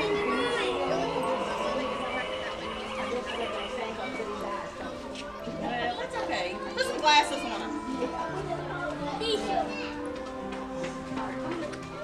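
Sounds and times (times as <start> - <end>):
children's voices: 0.0 - 12.0
music with long held notes: 0.0 - 12.0.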